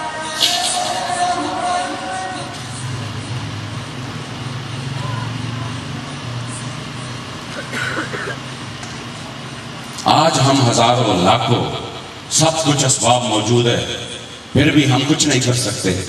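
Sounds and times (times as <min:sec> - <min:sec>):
faint indistinct voices: 0:00.0 - 0:10.1
steady low hum: 0:00.0 - 0:16.0.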